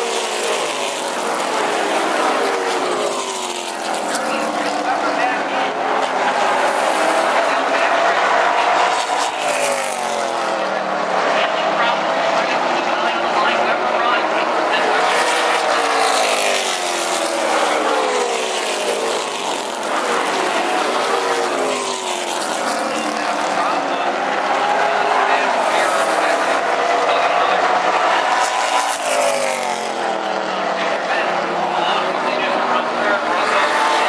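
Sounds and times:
race cars passing: 0:00.0 - 0:34.0.

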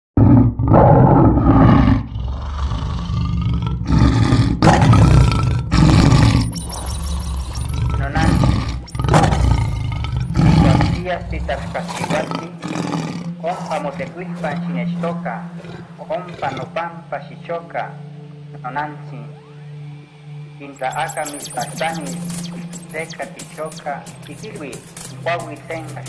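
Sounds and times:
lion roaring and grunting: 0:00.2 - 0:16.8.

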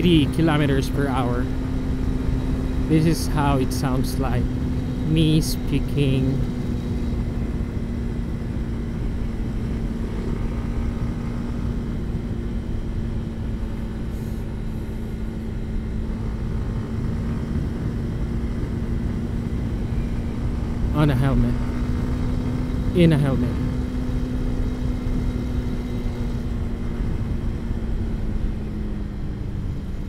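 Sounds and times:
motorcycle engine cruising: 0:00.0 - 0:30.0.

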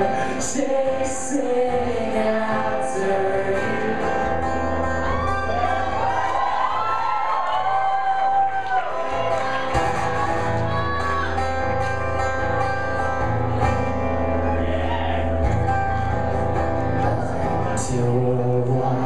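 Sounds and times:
person singing wordless melody: 0:00.0 - 0:04.5, 0:16.8 - 0:19.0
acoustic guitar strumming: 0:00.0 - 0:06.3, 0:09.0 - 0:19.0.

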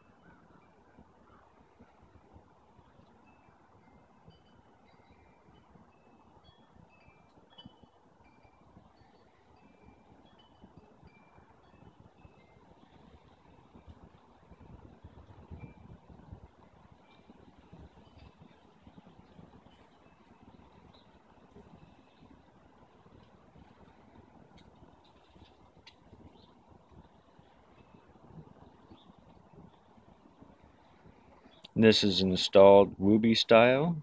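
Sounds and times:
faint outdoor background noise: 0:00.0 - 0:34.0.

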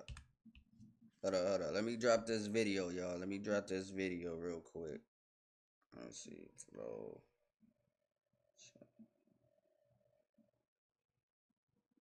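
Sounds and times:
man talking: 0:01.2 - 0:05.0, 0:06.0 - 0:07.2.

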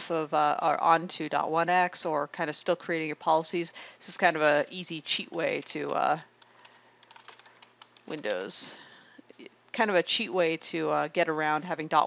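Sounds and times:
computer keyboard typing: 0:05.1 - 0:08.2.

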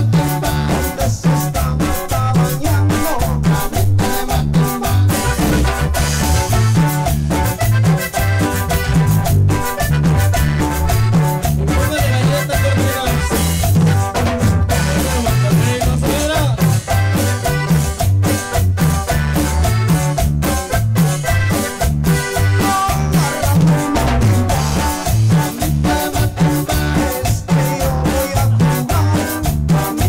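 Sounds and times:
man singing lead vocal: 0:00.0 - 0:05.7, 0:11.6 - 0:13.6, 0:14.7 - 0:17.0, 0:22.3 - 0:30.0
live rock band playing: 0:00.0 - 0:30.0.

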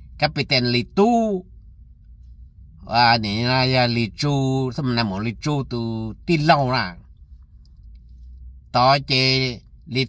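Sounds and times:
low rumble inside car cabin: 0:00.0 - 0:10.0
man talking: 0:00.2 - 0:01.4, 0:02.8 - 0:07.0, 0:08.8 - 0:10.0.

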